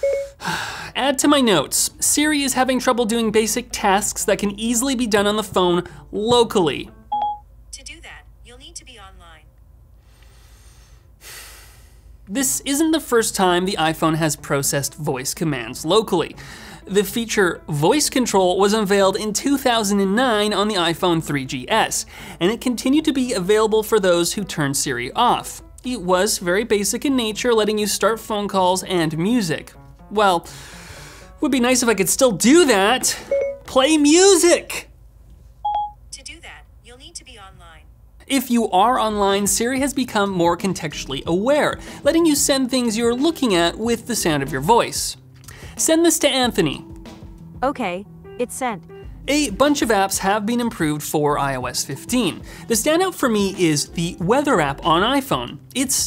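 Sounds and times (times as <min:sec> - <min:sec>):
electronic chime: 0:00.0 - 0:00.4, 0:33.2 - 0:33.7
synthesized voice from phone speaker: 0:07.8 - 0:09.5, 0:36.2 - 0:37.8.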